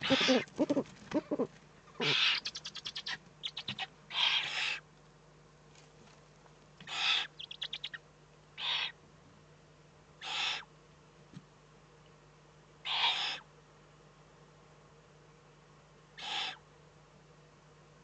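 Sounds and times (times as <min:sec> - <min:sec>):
owlets hissing begging calls: 0:00.0 - 0:04.8, 0:06.9 - 0:08.0, 0:08.6 - 0:09.0, 0:10.2 - 0:10.7, 0:12.9 - 0:13.5, 0:16.2 - 0:16.6.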